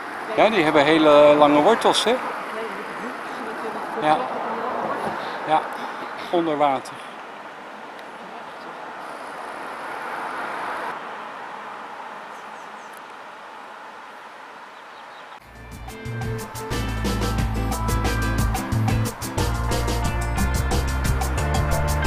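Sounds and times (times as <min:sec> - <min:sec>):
steady outdoor hiss: 0:00.0 - 0:22.0
music with heavy bass beat: 0:15.4 - 0:22.0.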